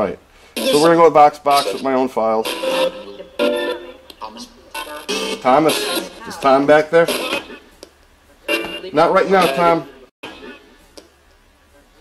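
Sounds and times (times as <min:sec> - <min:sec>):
choppy snippets of music and voice: 0:00.6 - 0:07.7.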